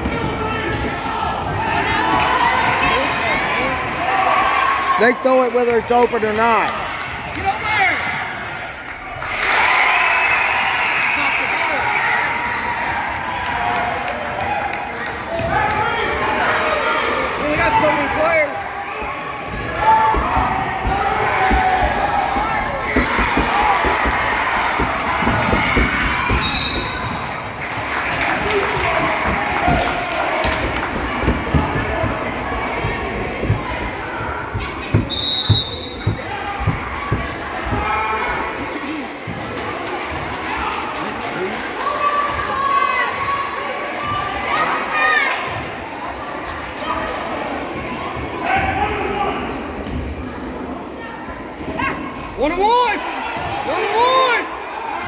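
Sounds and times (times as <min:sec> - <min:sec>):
referee whistle blasts: 0:26.4 - 0:27.0, 0:35.1 - 0:36.1.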